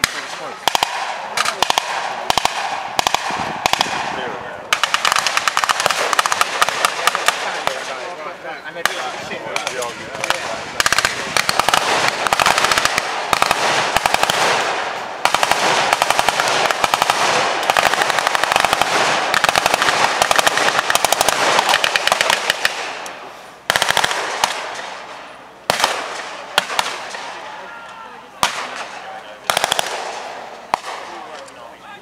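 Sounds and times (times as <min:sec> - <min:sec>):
automatic gunfire: 0:00.0 - 0:08.0, 0:08.8 - 0:23.0, 0:23.7 - 0:25.0, 0:25.7 - 0:27.3, 0:28.4 - 0:28.9, 0:29.5 - 0:31.2
single gunshots: 0:00.0 - 0:08.0, 0:08.8 - 0:23.0, 0:23.7 - 0:25.1, 0:25.7 - 0:27.4, 0:28.4 - 0:31.3.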